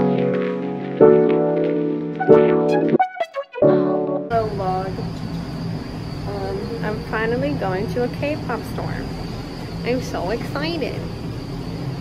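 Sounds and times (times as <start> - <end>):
people talking: 4.3 - 5.1, 6.3 - 9.2, 9.8 - 11.1
high-pitched whine: 4.3 - 12.0.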